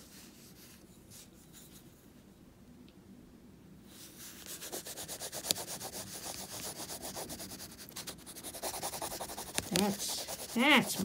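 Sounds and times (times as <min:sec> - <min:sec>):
crayon scribbling on paper: 0:04.4 - 0:11.0.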